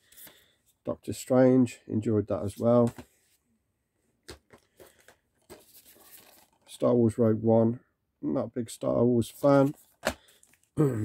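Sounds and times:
card slipcase rustling and scraping: 4.3 - 6.8, 9.3 - 10.6.

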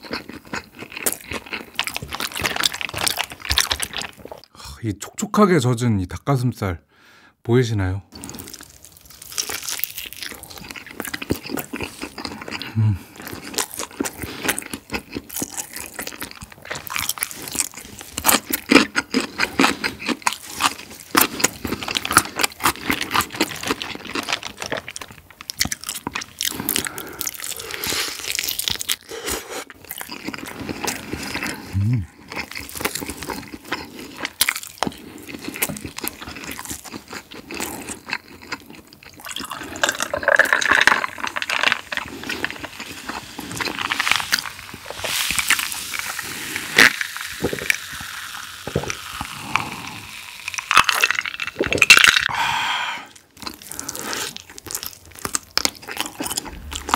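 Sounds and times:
crunching and chewing fried chicken: 0.0 - 4.5, 8.1 - 56.9
beer poured into a glass: 39.4 - 41.9.

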